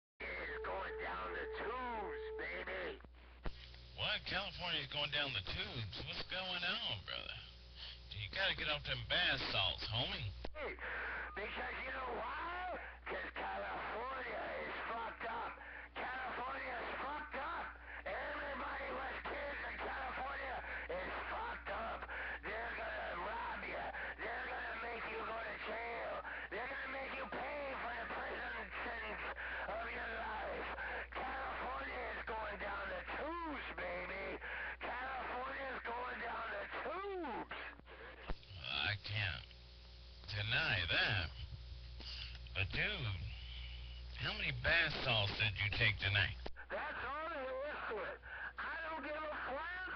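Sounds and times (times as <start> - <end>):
man's voice over radio speaker: 0.2 - 3.1, 3.8 - 39.6, 40.2 - 49.9
steady low hum: 0.2 - 49.9.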